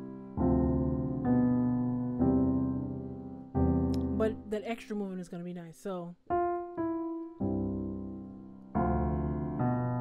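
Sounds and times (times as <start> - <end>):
piano notes and chords: 0.0 - 4.8, 6.3 - 10.0.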